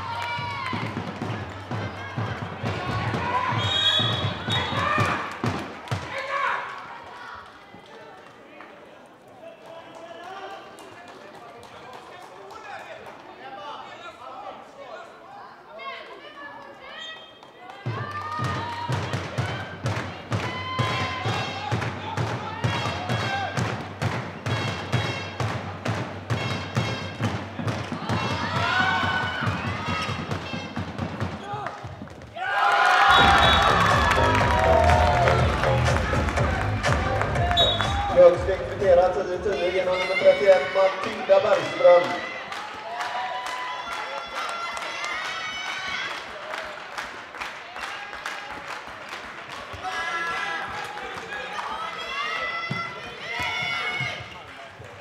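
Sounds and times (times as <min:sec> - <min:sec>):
music: 0:00.0 - 0:05.6, 0:17.9 - 0:31.4, 0:33.2 - 0:39.3
ball bouncing on hall floor: 0:00.4 - 0:06.2
players calling out: 0:32.4 - 0:42.4.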